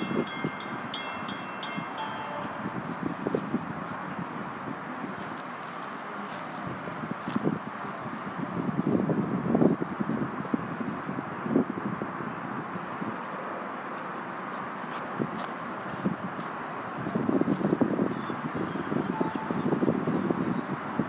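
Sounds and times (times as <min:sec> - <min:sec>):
crossing warning bell dinging: 0:00.0 - 0:03.7, 0:19.0 - 0:20.2
traffic rumble: 0:00.0 - 0:21.0
wind: 0:00.0 - 0:21.0.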